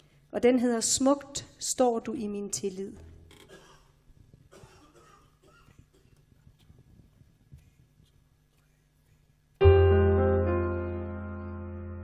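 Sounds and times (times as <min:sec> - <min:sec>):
piano chord with deep bass note: 0:09.6 - 0:12.0.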